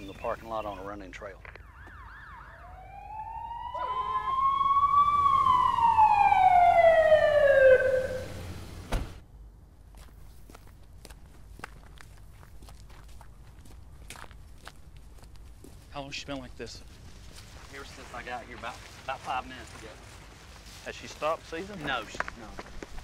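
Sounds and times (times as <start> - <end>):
ambulance siren wailing: 1.5 - 8.8.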